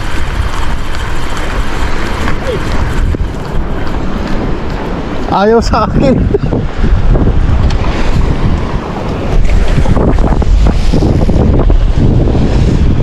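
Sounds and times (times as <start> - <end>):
sea waves washing in: 0.0 - 13.0
wind buffeting microphone: 0.0 - 13.0.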